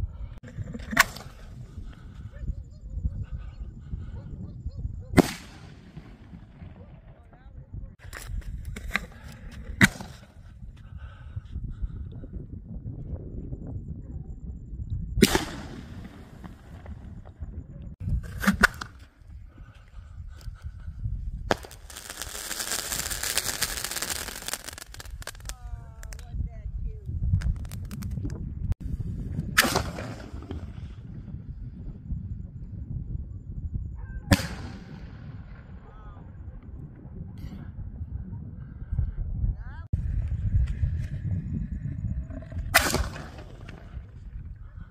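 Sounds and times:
fireworks bangs: 5.1 - 7.4, 15.2 - 17.3, 21.5 - 26.2, 34.3 - 35.9
fireworks hissing crackle: 21.5 - 26.2, 27.4 - 28.2.

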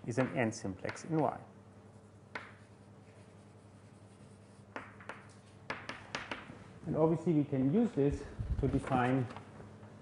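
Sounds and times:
faint steady hum: 0.0 - 10.0
taps and strokes on a board: 0.1 - 1.4, 2.0 - 6.6.

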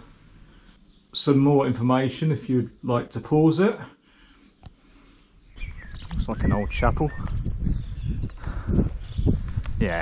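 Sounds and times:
wind buffeting microphone: 5.6 - 10.0.

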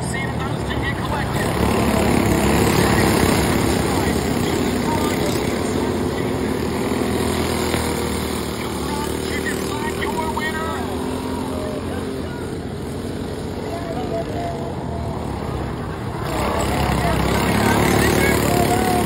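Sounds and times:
go-kart engines running: 0.0 - 19.0.

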